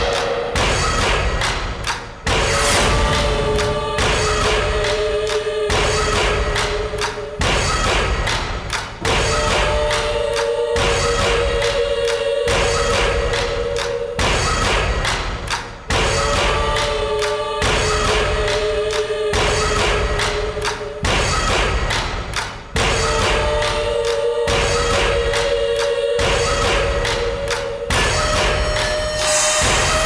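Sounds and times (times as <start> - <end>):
heavy reverberant drum hits: 0.0 - 11.8
sharp percussion hits: 0.0 - 30.0.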